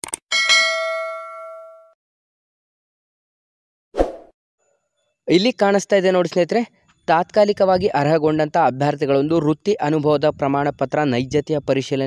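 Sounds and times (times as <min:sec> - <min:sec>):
bell notification ding: 0:00.3 - 0:02.0.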